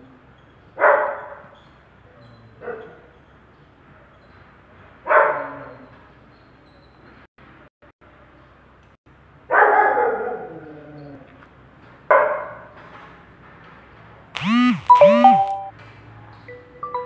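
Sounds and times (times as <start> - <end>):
dog barking: 0.8 - 1.5, 2.6 - 3.1, 5.0 - 5.5, 9.5 - 10.5, 12.1 - 12.7
chime notes: 14.9 - 15.7.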